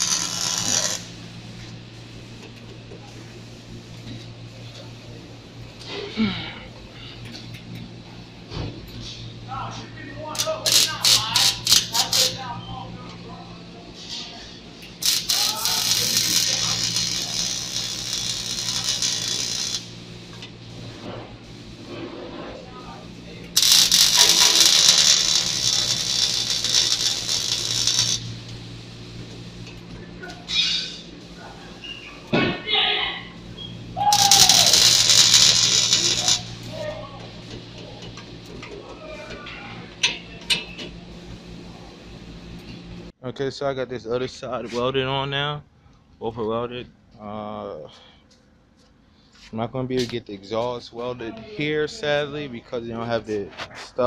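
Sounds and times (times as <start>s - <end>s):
welding crackling bursts: 0.0s - 1.6s, 10.3s - 12.5s, 14.9s - 20.5s, 23.0s - 29.6s, 33.8s - 37.0s
arc welding hiss: 0.0s - 2.3s, 10.4s - 12.4s, 14.9s - 20.5s, 22.8s - 29.6s, 33.5s - 37.0s
steady low hum: 0.0s - 54.0s.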